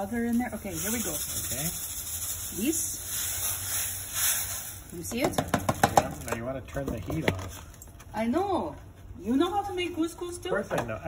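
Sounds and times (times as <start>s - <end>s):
couscous grains pouring hiss: 0.0s - 5.1s.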